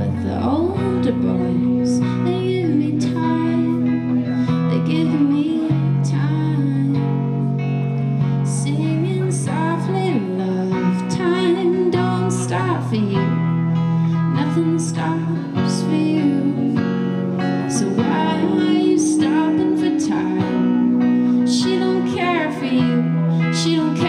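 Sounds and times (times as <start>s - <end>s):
low bass notes: 0.0s - 24.0s
second guitar: 0.0s - 24.0s
strummed guitar: 0.0s - 24.0s
woman singing: 0.0s - 24.0s.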